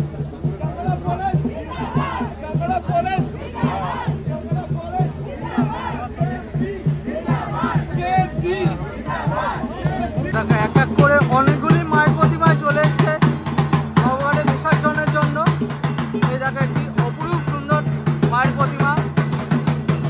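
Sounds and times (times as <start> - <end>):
crowd shouting and chanting: 0.0 - 13.2
repeating drumbeat: 0.0 - 20.0.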